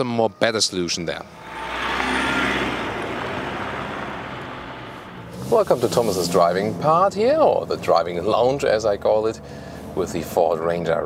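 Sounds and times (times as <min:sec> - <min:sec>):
pickup diesel engine driving away: 0:00.9 - 0:11.0.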